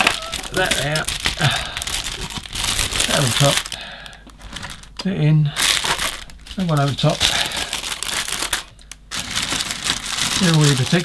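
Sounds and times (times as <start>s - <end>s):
plastic bags crinkling: 0.0s - 5.0s, 5.6s - 11.0s.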